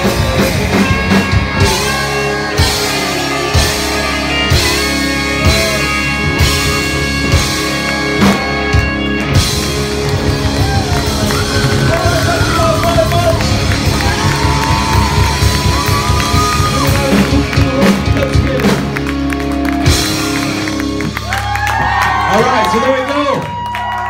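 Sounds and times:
drums: 0:00.0 - 0:24.0
rock band playing: 0:00.0 - 0:24.0
person singing: 0:15.2 - 0:19.0.

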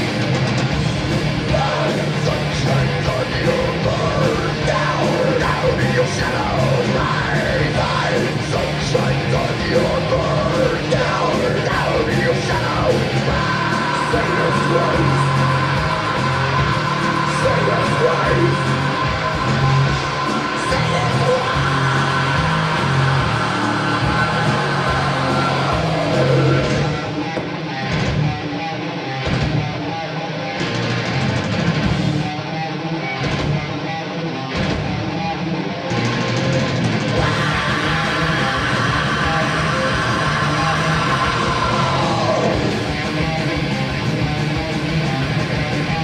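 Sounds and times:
drums and cymbals: 0:00.0 - 0:28.4, 0:36.0 - 0:46.0
distorted electric guitar: 0:00.0 - 0:46.0.

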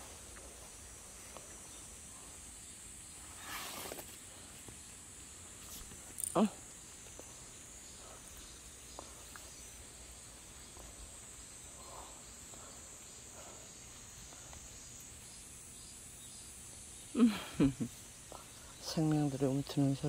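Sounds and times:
insects calling: 0:00.0 - 0:20.0.

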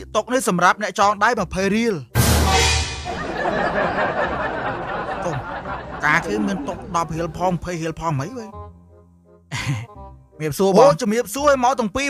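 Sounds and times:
faint background music: 0:00.0 - 0:02.4, 0:05.3 - 0:12.0
person speaking: 0:05.2 - 0:08.6.

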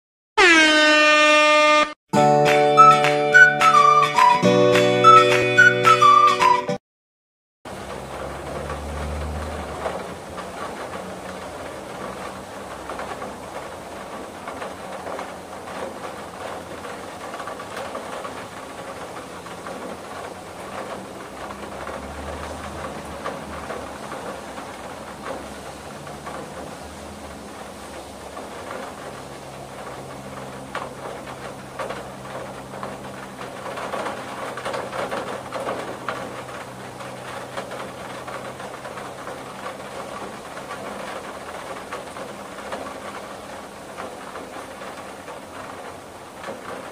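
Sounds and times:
rain pattering on a window: 0:07.7 - 0:46.9.

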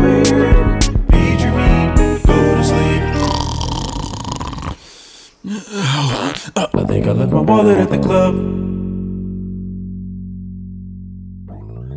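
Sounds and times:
rough throat noise: 0:03.1 - 0:08.0.

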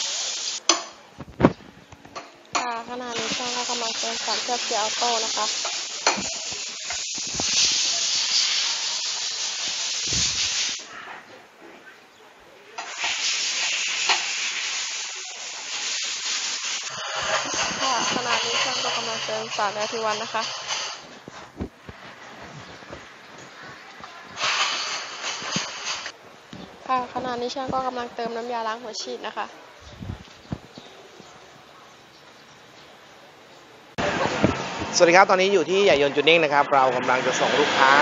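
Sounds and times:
steady hiss: 0:00.0 - 0:01.6, 0:02.4 - 0:10.9, 0:12.7 - 0:28.7, 0:32.6 - 0:38.0.

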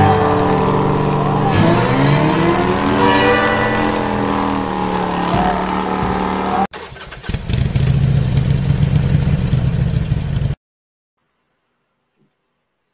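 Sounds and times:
music: 0:00.0 - 0:06.4
motorcycle engine revving: 0:00.0 - 0:10.6.

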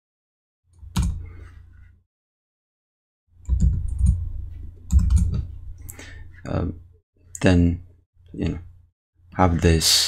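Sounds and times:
keyboard and mouse clicks: 0:00.8 - 0:01.2, 0:03.4 - 0:04.2, 0:04.8 - 0:05.5.

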